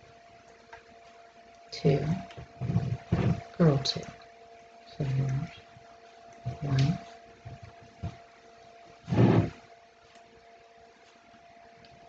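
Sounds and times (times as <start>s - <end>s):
faint electrical hum: 0.0s - 12.0s.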